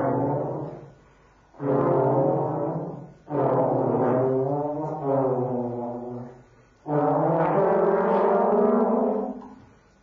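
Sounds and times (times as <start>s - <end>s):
trombone low held notes: 0.0s - 9.6s.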